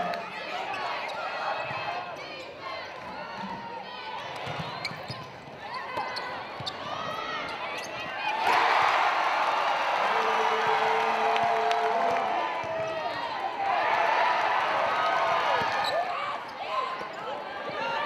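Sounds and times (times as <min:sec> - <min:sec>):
crowd noise: 0:00.0 - 0:18.0
sneakers squeaking: 0:04.3 - 0:08.5, 0:15.5 - 0:17.4.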